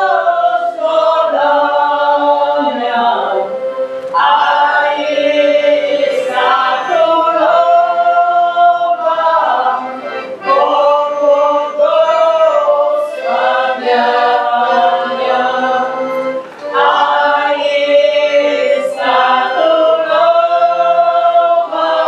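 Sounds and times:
group singing unaccompanied: 0.0s - 22.0s.

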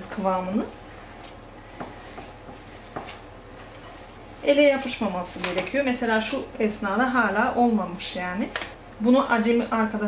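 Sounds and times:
hand kneading sticky dough: 0.0s - 6.3s.

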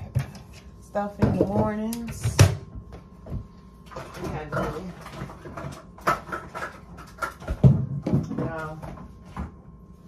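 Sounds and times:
groceries knocking and thumping: 0.0s - 9.8s.

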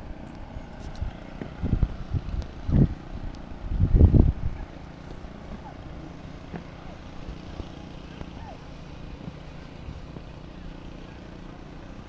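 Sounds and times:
distant motor hum: 0.0s - 12.0s
faint voices: 4.6s - 12.0s.

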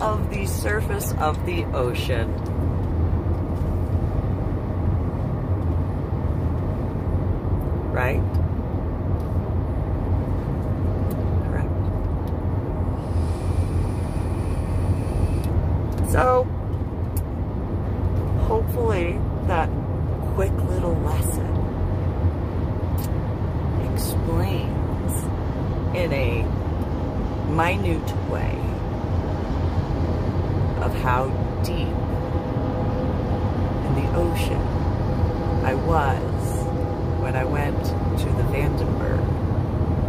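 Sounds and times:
car rumble inside cabin: 0.0s - 40.0s
faint hiss of vape: 13.0s - 15.5s.

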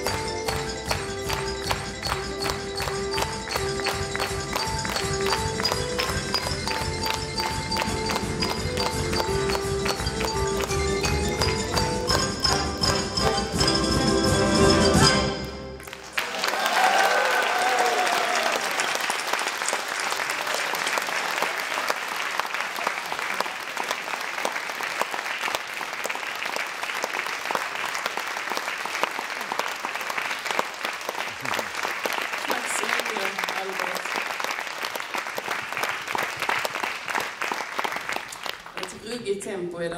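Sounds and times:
audience applause: 0.0s - 13.4s, 15.7s - 39.1s
xylophone solo: 0.0s - 15.8s
concert band playing: 0.0s - 15.9s
people whooping: 16.2s - 19.0s.

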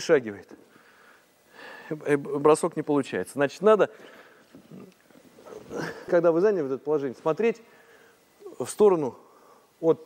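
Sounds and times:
person breathing quietly: 0.6s - 2.0s, 7.6s - 8.4s, 9.2s - 9.8s
breathy intake of breath: 0.7s - 2.0s, 7.7s - 8.3s, 9.2s - 9.8s.

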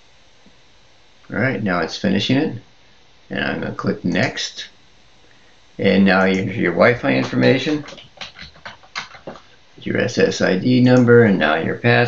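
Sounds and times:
typing on keyboard: 6.3s - 9.4s.

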